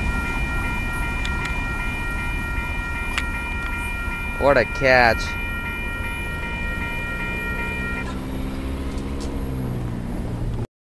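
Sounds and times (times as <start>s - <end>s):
train horn chord: 0.0s - 8.6s
train rumbling on rails: 0.0s - 10.6s.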